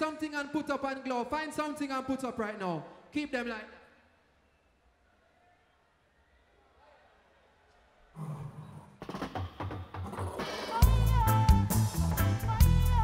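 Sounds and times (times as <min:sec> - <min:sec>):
drum kit: 0:09.0 - 0:13.0
live reggae band playing: 0:09.2 - 0:13.0.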